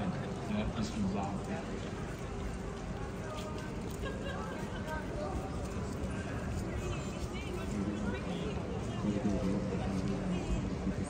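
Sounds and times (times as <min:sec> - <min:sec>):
low hum of town: 0:00.0 - 0:11.0
passers-by talking: 0:00.0 - 0:11.0.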